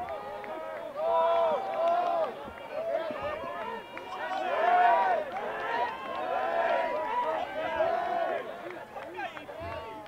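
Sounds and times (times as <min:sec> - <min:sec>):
people shouting: 0:02.8 - 0:08.5.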